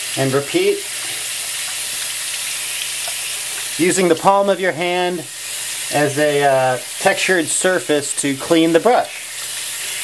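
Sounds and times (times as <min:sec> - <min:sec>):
tap water running: 0:00.0 - 0:10.0
paintbrush rinsed under water: 0:02.7 - 0:10.0.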